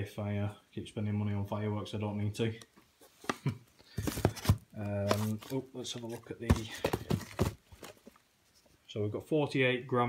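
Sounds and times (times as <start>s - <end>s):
cardboard tubes knocking and rubbing: 3.1s - 8.7s.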